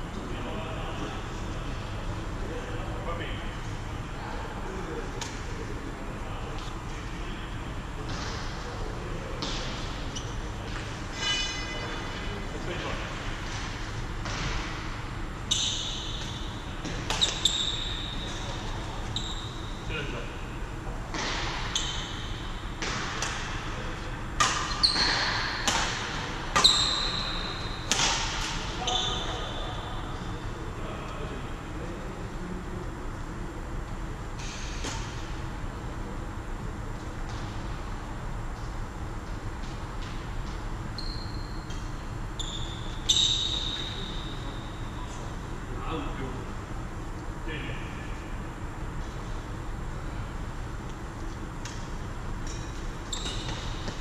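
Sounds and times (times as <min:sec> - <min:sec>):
shoes squeaking on court floor: 0:09.4 - 0:12.3, 0:15.4 - 0:19.9, 0:21.2 - 0:23.2, 0:24.6 - 0:25.5, 0:26.5 - 0:29.6, 0:39.6 - 0:45.2, 0:52.5 - 0:54.0
racket striking shuttlecock: 0:27.8 - 0:28.7.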